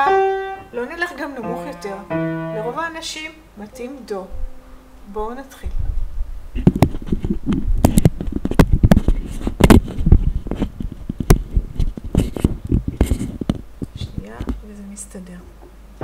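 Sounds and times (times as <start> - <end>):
low rumble: 4.2 - 11.8
camera handling knocks and rubbing: 6.7 - 13.7.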